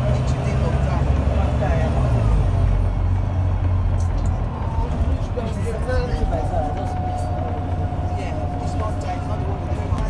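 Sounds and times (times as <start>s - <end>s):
bus engine and road rumble: 0.0s - 10.0s
steady whine: 4.5s - 10.0s.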